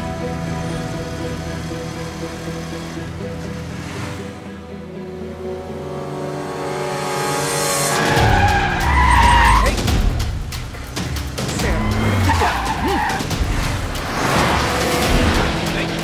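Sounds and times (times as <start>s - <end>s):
car engine revving: 0.0s - 16.0s
music: 0.0s - 16.0s
tyres screeching: 7.5s - 16.0s.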